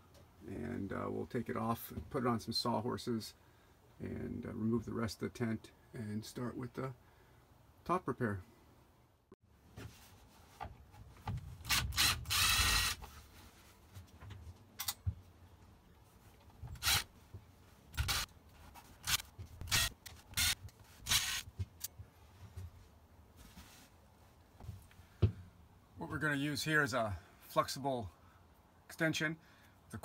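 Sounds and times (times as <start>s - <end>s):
cordless drill running: 11.7s - 13.0s, 16.8s - 17.1s, 18.0s - 18.3s, 19.0s - 21.5s.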